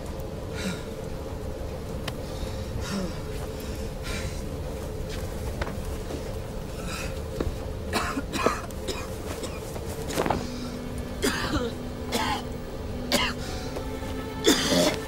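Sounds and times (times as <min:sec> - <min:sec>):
low rumble: 0:00.0 - 0:15.0
man coughing and gasping: 0:07.9 - 0:10.4, 0:11.2 - 0:12.5, 0:13.1 - 0:13.4, 0:14.4 - 0:15.0.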